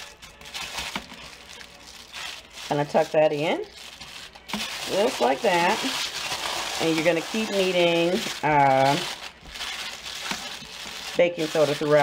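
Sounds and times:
plastic sheet crinkling: 0.0 - 12.0.

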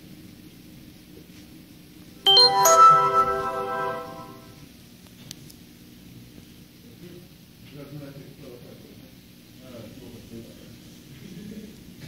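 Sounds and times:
three-note chime: 2.3 - 4.6.

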